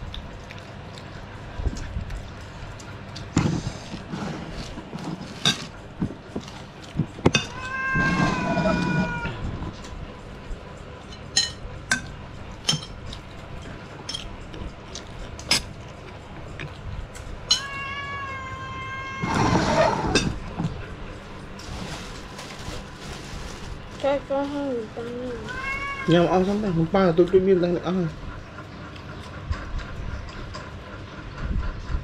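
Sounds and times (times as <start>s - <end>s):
high meow-like calls: 7.4s - 9.5s, 17.5s - 20.3s, 25.4s - 26.3s
spoons clinking on plates: 11.1s - 13.0s, 17.5s - 17.8s.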